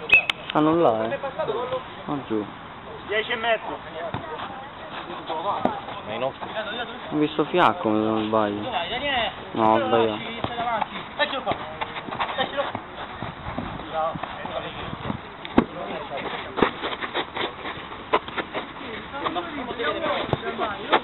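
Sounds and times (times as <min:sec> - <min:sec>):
ball being kicked: 0:04.1 - 0:04.4, 0:10.1 - 0:15.9, 0:20.2 - 0:21.0.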